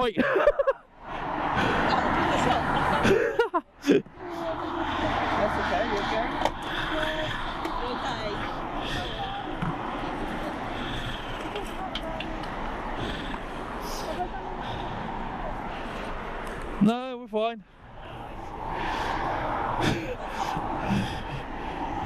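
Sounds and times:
street background noise: 0.0s - 22.0s.

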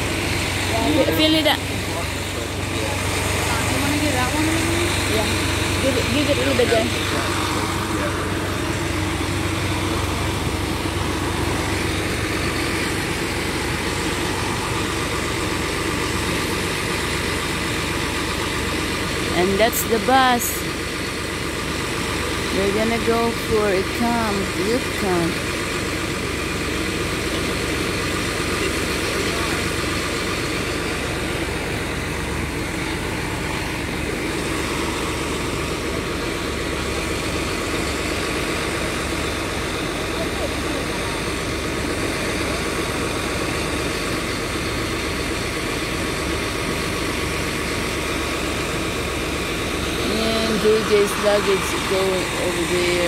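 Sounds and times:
diesel engine idling: 0.0s - 53.0s.

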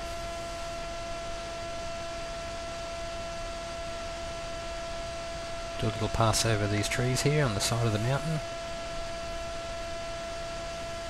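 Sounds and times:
faint hum tones: 0.0s - 11.0s
steady hiss: 5.8s - 9.7s.

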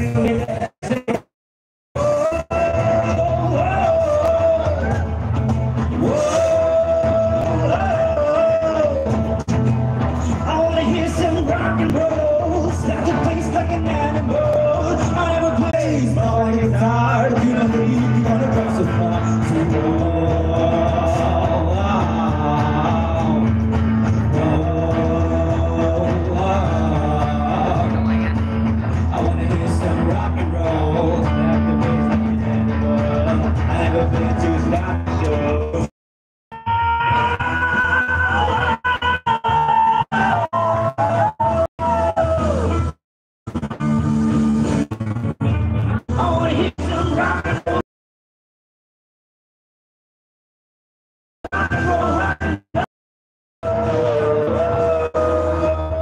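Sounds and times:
live rock band playing: 2.0s - 35.7s
person singing: 6.0s - 9.3s, 10.2s - 35.9s, 53.6s - 56.0s.

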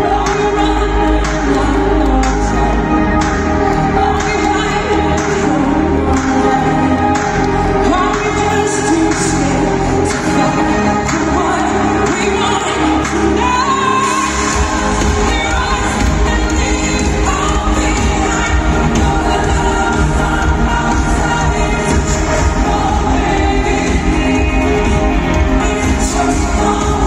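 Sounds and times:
live pop band: 0.0s - 27.0s
woman singing: 0.0s - 27.0s
heavy bass beat: 14.5s - 27.0s.

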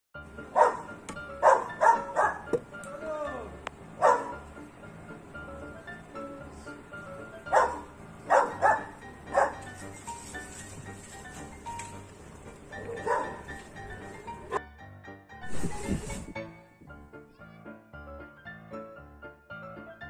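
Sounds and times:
background music: 0.2s - 20.0s
dog barking: 0.6s - 2.5s, 4.0s - 4.4s, 7.5s - 9.6s, 12.9s - 13.4s.

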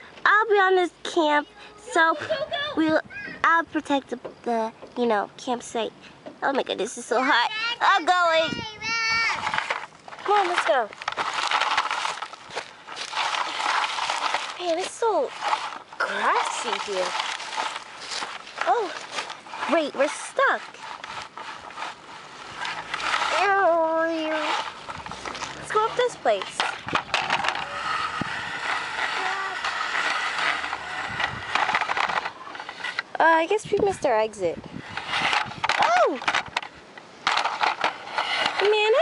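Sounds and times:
girl's voice: 0.2s - 9.5s, 10.2s - 10.9s, 14.6s - 15.4s, 16.0s - 17.1s, 18.6s - 20.7s, 23.3s - 24.7s, 25.7s - 26.6s, 29.1s - 29.8s, 33.2s - 34.6s, 35.8s - 36.3s
grass rustling against plastic toy: 0.4s - 39.0s.

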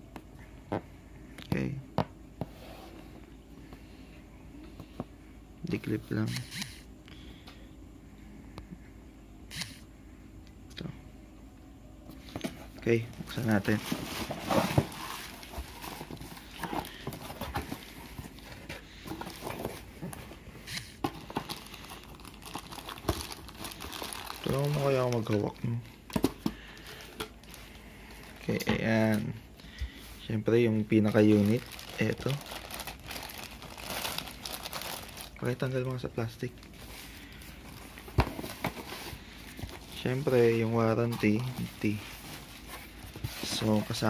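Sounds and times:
cardboard flaps scraping and rustling: 13.3s - 19.9s, 40.0s - 44.0s.

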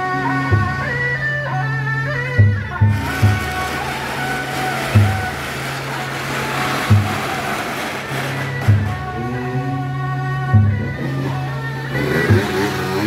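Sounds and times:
hissing wash of noise: 2.9s - 9.2s.

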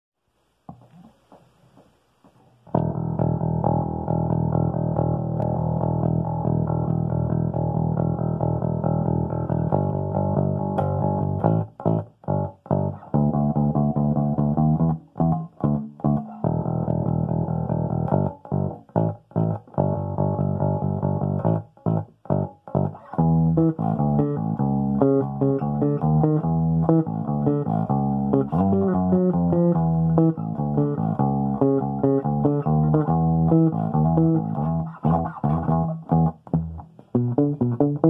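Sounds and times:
electric bass guitar: 2.6s - 38.0s.

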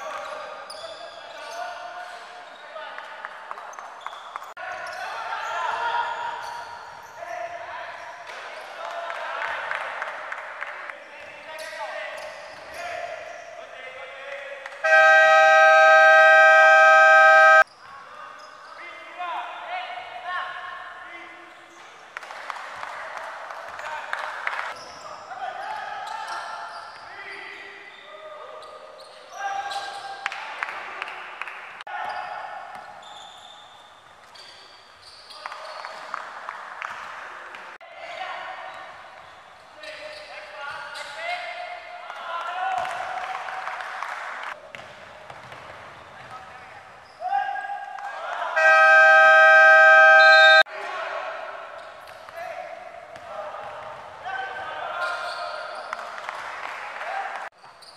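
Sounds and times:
sneaker squeaks on hardwood: 0.0s - 2.8s, 32.1s - 36.0s, 55.0s - 56.0s, 57.6s - 57.9s
applause echoing indoors: 8.8s - 11.0s, 22.2s - 24.8s, 30.2s - 31.8s, 35.5s - 37.7s, 42.4s - 44.6s, 55.9s - 57.5s
shot-clock buzzer: 14.9s - 17.6s.

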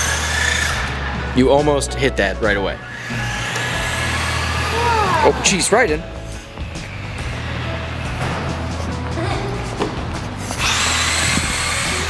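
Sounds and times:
rc car motor whirring: 0.0s - 1.2s, 2.8s - 5.6s, 10.4s - 12.0s
music with steady low beat: 0.0s - 12.0s.

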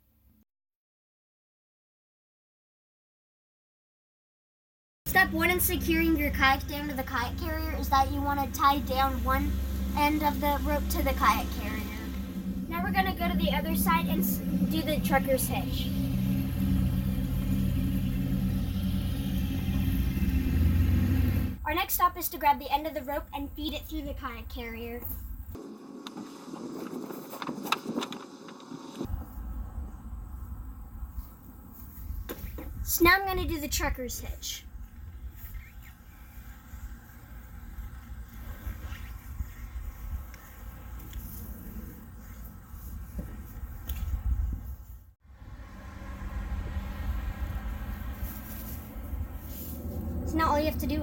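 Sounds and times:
low motor hum: 5.1s - 21.7s, 34.7s - 51.0s
rope rustling and scraping: 26.0s - 29.4s, 31.1s - 32.8s, 34.8s - 45.0s, 47.8s - 50.4s
wind rumble on microphone: 29.1s - 33.5s, 34.6s - 45.1s.

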